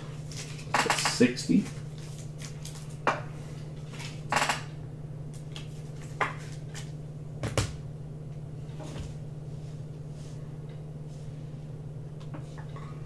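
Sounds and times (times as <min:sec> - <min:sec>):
low electrical hum: 0:00.0 - 0:13.0
trading cards knocking and clicking: 0:00.6 - 0:01.8.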